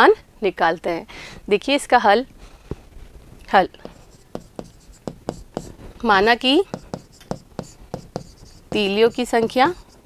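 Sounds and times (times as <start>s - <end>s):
chalk tapping and scratching on board: 3.8s - 10.0s.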